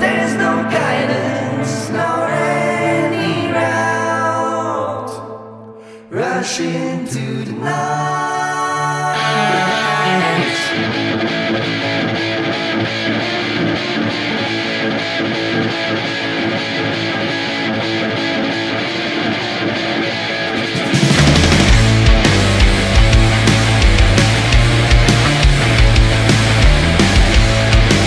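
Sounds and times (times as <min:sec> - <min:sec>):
electric guitar: 0:00.0 - 0:06.0, 0:08.7 - 0:28.0
heavy rock band playing: 0:09.3 - 0:28.0.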